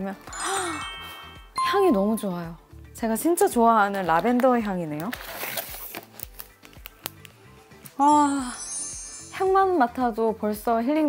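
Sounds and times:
paper packaging rustling: 0:05.0 - 0:06.8.

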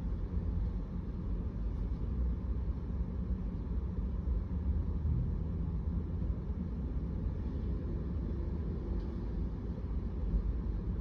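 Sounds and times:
low rumble of road traffic: 0:00.0 - 0:11.0.

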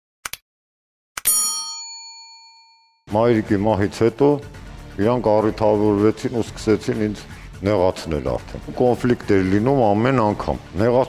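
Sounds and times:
bell ding: 0:01.3 - 0:03.0.

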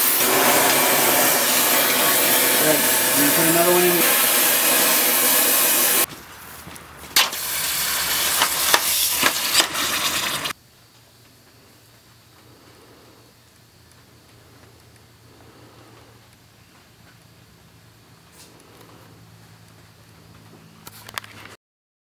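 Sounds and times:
hot steel quenched in water sizzling: 0:00.0 - 0:06.1, 0:07.2 - 0:10.6
loud rushing hiss: 0:00.0 - 0:06.1, 0:07.2 - 0:10.6.

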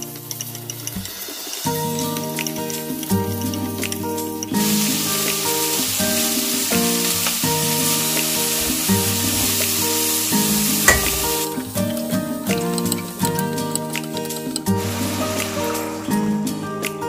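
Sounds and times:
zucchini sizzling in a pot: 0:00.0 - 0:12.0, 0:14.3 - 0:16.4
soft background music: 0:00.0 - 0:17.0
single knock: 0:10.9 - 0:11.4.

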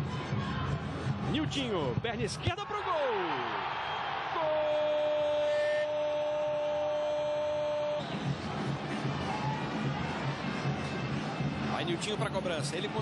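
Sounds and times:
stadium crowd noise: 0:00.0 - 0:13.0
steady horn tone: 0:04.4 - 0:08.1.

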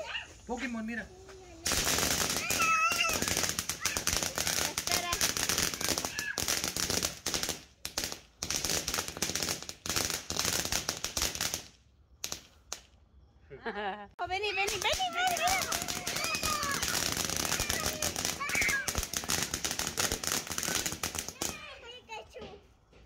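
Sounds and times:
firework fountain crackling: 0:00.0 - 0:13.0, 0:14.2 - 0:22.6.

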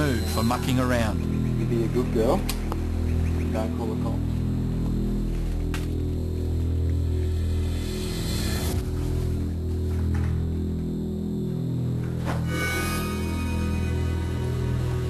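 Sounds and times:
dark background music drone: 0:00.0 - 0:15.0.

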